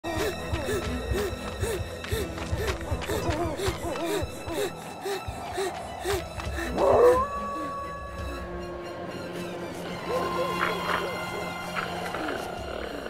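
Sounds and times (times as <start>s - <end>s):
quick rhythmic breaths: 0.0s - 8.0s
wolf howling: 6.7s - 8.6s.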